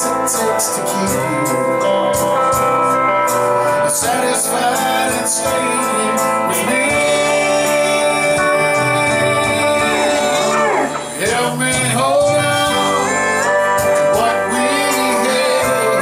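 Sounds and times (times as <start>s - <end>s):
country band with electric guitars: 0.0s - 16.0s
guitar pitch slide: 0.0s - 16.0s
man singing: 0.0s - 16.0s.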